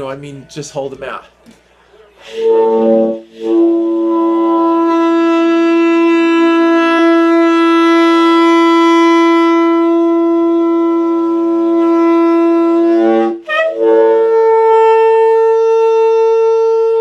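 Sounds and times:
tenor saxophone notes: 2.2 - 17.0.

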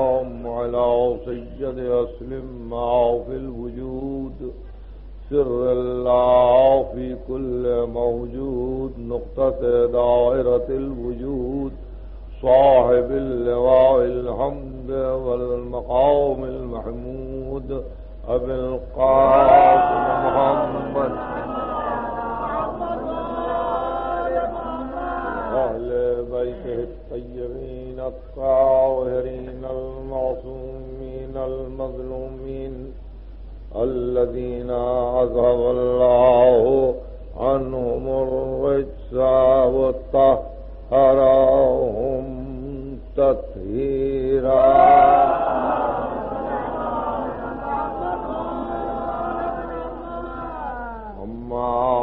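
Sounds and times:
man chanting: 0.0 - 33.0, 33.7 - 52.0
steady low hum: 0.0 - 52.0.

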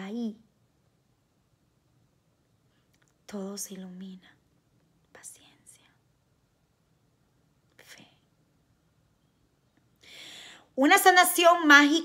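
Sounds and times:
woman whispering: 3.3 - 4.4, 5.1 - 6.0, 7.7 - 8.3.

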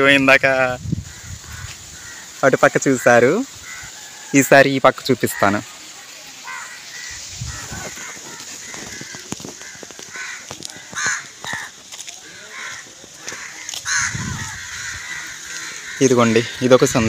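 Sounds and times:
birds calling: 0.0 - 17.0
faint footsteps: 6.9 - 16.6.

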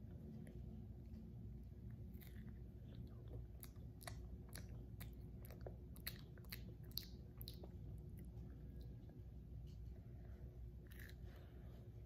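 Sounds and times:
child chewing crunchy bread: 0.1 - 12.0.

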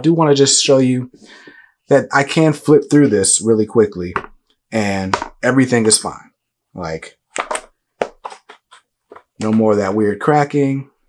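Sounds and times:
pages flipped by hand: 7.4 - 9.6.

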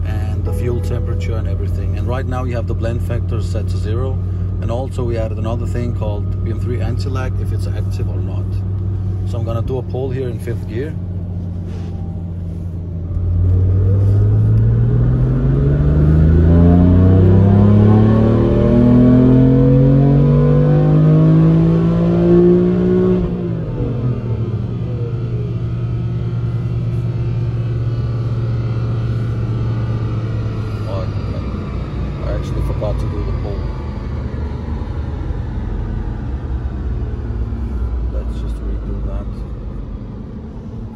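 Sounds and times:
car engine revving at full throttle: 0.0 - 40.9.

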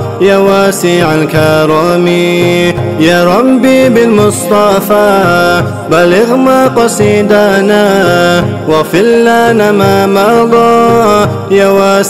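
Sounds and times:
men singing in layered voices: 0.0 - 12.0.

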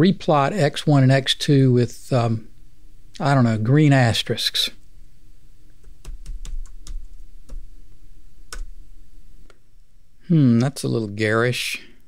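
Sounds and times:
computer keyboard typing: 5.8 - 7.6.

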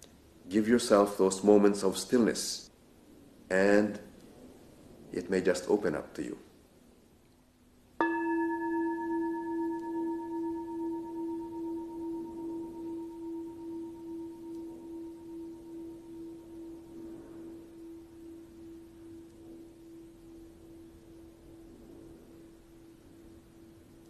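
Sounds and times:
bowl bell ringing: 8.0 - 24.0.

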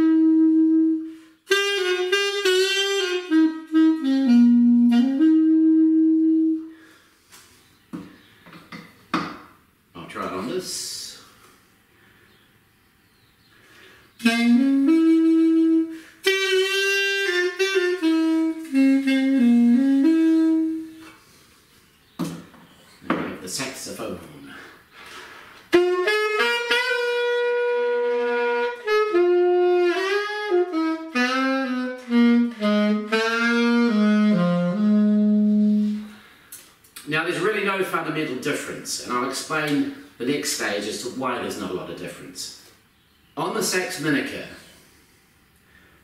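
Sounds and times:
alto saxophone melody: 0.0 - 7.3, 13.8 - 21.5, 25.0 - 36.5.

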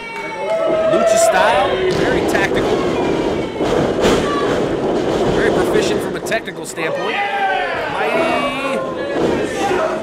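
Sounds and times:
thuds from ring boards: 1.8 - 6.4.

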